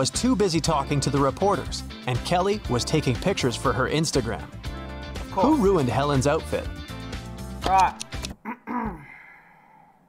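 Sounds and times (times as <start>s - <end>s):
man sighing: 8.7s - 10.0s.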